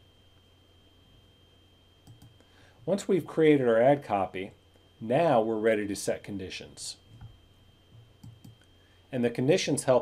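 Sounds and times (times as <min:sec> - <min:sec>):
faint high-pitched whine: 0:00.0 - 0:10.0
faint computer mouse clicks: 0:02.0 - 0:02.4.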